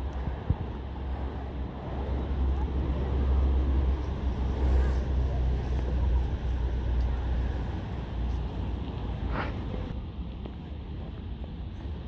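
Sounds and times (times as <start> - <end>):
low city rumble: 0.0 - 12.0.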